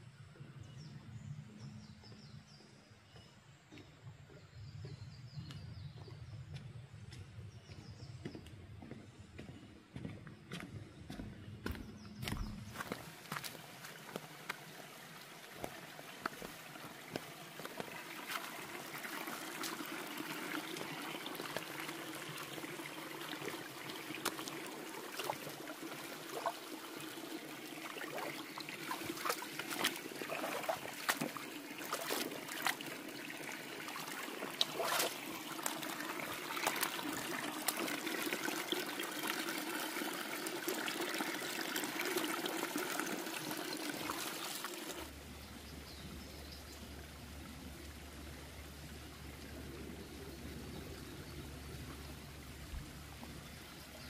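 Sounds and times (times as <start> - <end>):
stream running over stones: 12.2 - 54.0
feet splashing in water: 15.5 - 22.0, 23.4 - 39.5.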